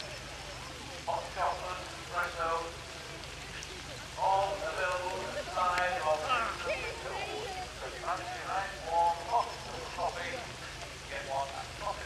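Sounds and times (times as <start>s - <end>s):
indistinct talking: 0.0s - 12.0s
rain hissing: 0.0s - 12.0s.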